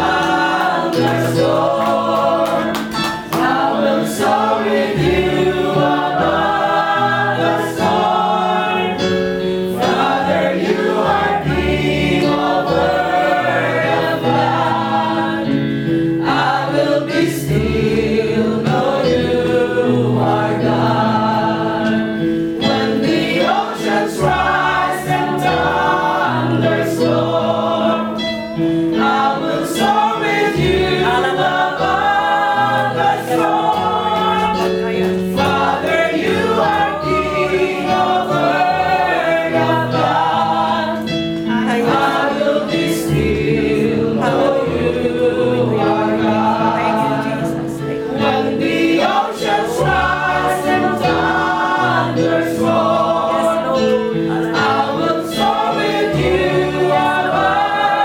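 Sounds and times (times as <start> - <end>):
group singing a hymn: 0.0 - 58.0.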